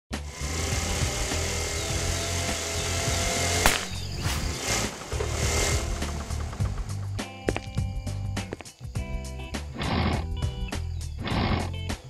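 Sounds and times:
background music: 0.2s - 12.0s
scooter engine puttering: 0.4s - 7.8s
sharp bang: 3.6s - 4.8s.

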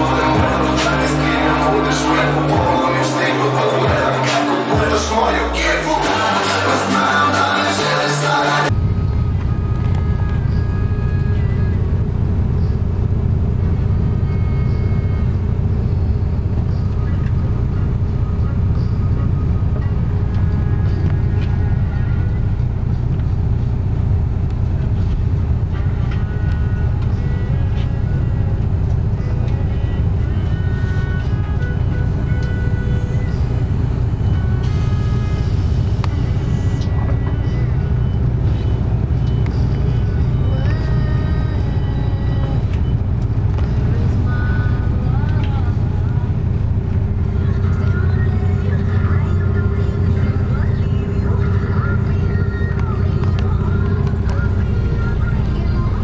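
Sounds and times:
music: 0.0s - 56.0s
vehicle engine rumble from inside: 0.0s - 56.0s.

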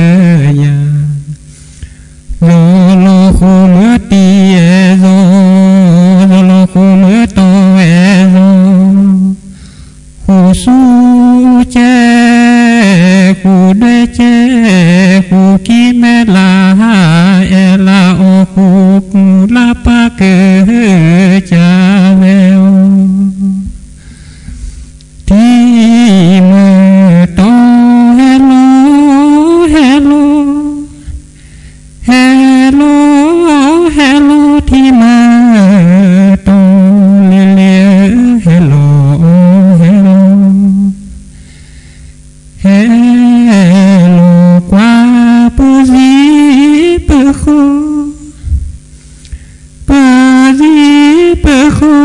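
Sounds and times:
faint electrical hum: 0.0s - 52.0s.

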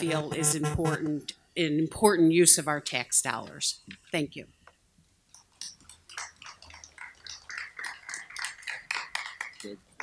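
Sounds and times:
audience applause: 6.1s - 9.8s.

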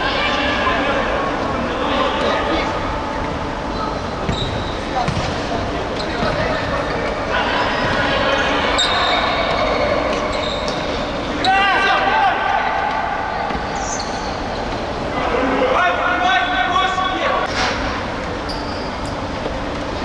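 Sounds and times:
ball kicked on court: 4.3s - 5.4s
players shouting: 11.2s - 13.8s.

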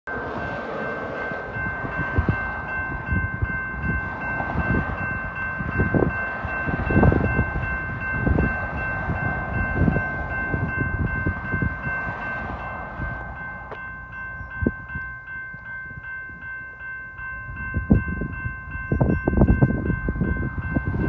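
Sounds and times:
railroad crossing bell ringing: 0.1s - 21.0s
wind buffeting microphone: 0.1s - 21.0s.

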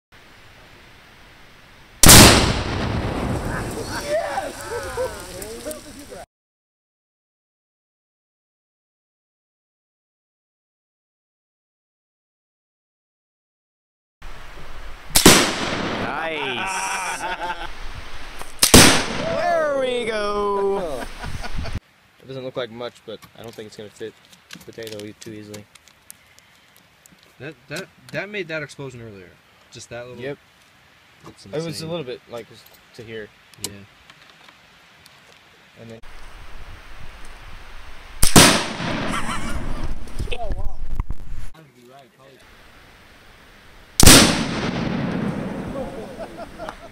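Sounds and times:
gunshot: 2.0s - 3.6s, 15.1s - 16.1s, 18.6s - 19.4s, 38.2s - 39.8s, 44.0s - 45.9s
explosive target boom: 2.0s - 3.8s, 44.0s - 45.9s.

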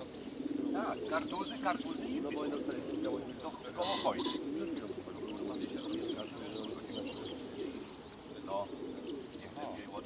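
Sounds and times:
pigeons cooing: 0.0s - 10.0s
small birds chirping: 0.0s - 10.0s.

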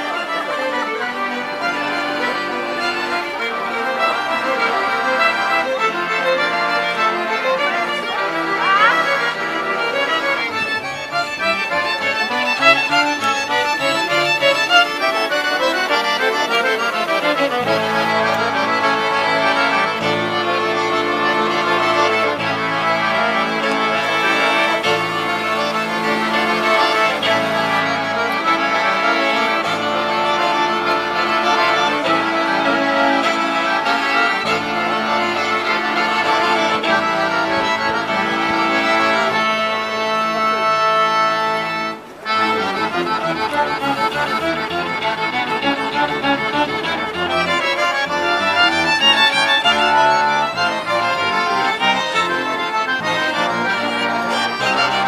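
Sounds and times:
street band with accordions: 0.0s - 55.0s
tuba: 0.0s - 55.0s.

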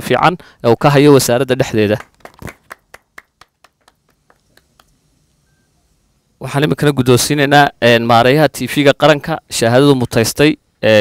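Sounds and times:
faint hand claps: 1.9s - 5.0s.

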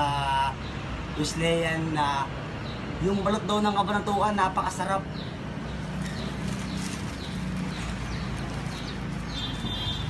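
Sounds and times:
plastic bag rustling: 6.0s - 10.0s.

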